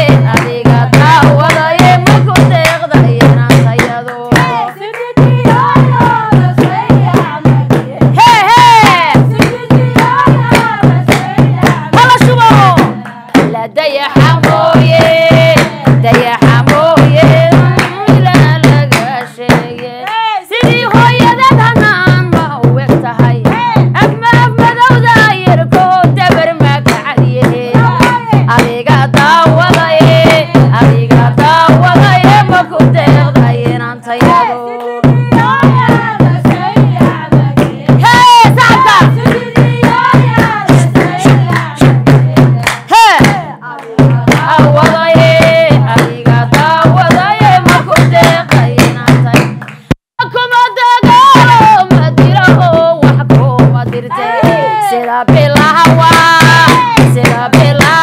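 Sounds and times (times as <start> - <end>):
drum strokes: 0.0 - 50.0, 50.8 - 58.0
women singing: 0.0 - 58.0
hand claps: 1.4 - 7.8, 17.7 - 21.6, 38.2 - 50.0.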